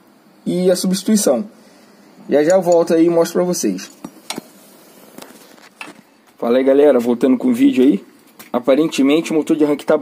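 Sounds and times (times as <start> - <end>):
wrench clinking on metal: 2.4 - 3.0.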